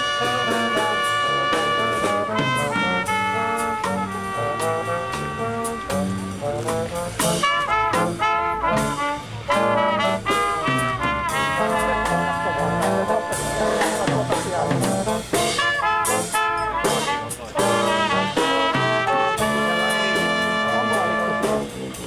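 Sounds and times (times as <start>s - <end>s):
brass instruments playing a tune: 0.0s - 22.0s.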